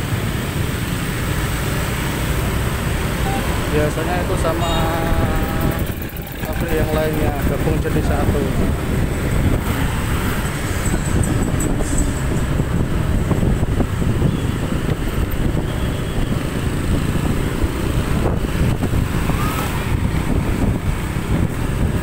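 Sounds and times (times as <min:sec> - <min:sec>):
motor scooter engines running: 0:00.0 - 0:22.0
wind buffeting microphone: 0:03.7 - 0:22.0.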